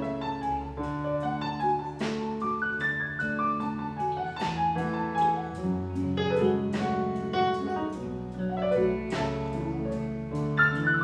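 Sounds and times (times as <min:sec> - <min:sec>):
piano soundtrack music: 0:00.0 - 0:11.0.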